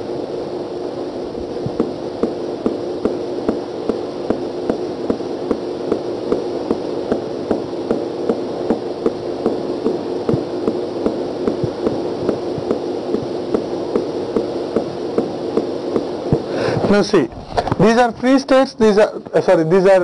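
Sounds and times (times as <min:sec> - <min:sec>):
steady hiss and hum: 0:00.0 - 0:20.0.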